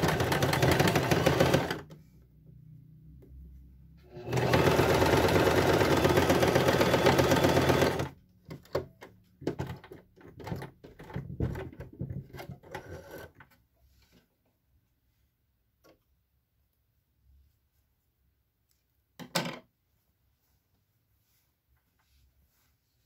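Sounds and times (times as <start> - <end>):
sewing machine stitching fast: 0.0 - 1.9, 4.1 - 8.2.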